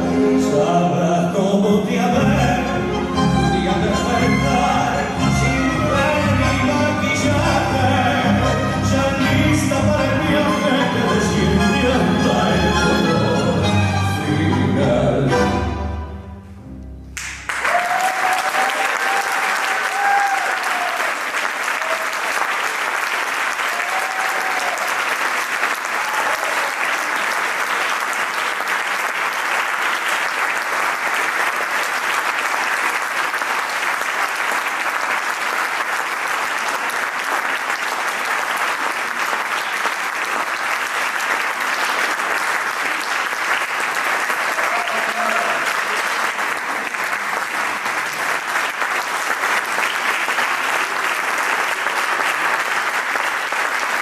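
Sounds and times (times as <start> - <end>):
music: 0.0 - 17.6
audience applause: 17.2 - 54.0.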